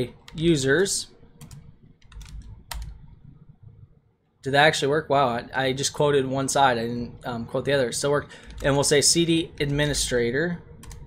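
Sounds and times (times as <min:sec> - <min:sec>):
computer keyboard typing: 0:01.4 - 0:03.0, 0:08.4 - 0:08.9, 0:10.8 - 0:11.0.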